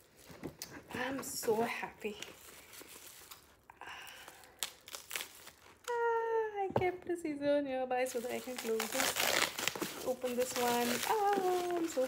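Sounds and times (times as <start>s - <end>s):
packaging crinkling and rustling: 0.0s - 6.0s, 8.1s - 12.0s.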